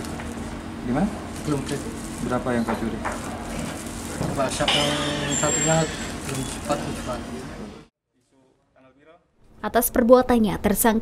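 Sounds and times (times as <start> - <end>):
man speaking: 4.4 - 7.8.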